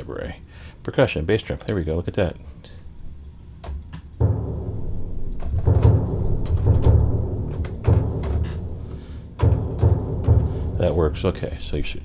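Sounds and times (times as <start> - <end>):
orchestral bass drum hits: 4.2 - 11.1.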